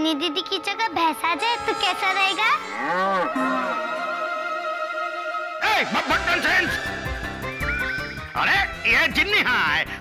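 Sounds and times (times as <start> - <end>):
child chattering: 0.0 - 3.4, 7.5 - 8.4.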